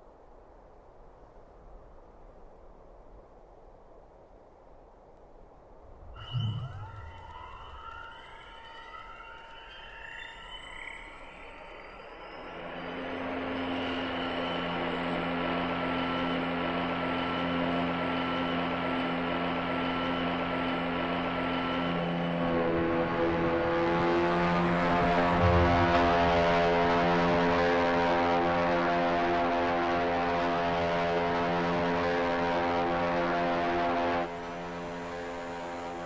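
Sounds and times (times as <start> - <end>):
layered drone: 6.1 - 36.0
low thump: 25.4 - 26.5.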